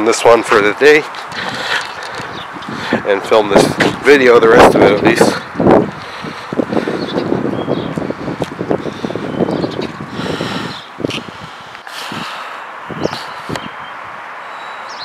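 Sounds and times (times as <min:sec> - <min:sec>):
wind gusting on microphone: 0:00.0 - 0:15.0.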